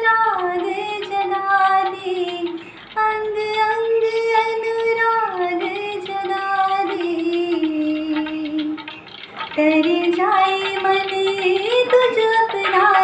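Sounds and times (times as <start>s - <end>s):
woman singing devotional song: 0.0s - 8.9s, 9.6s - 13.0s.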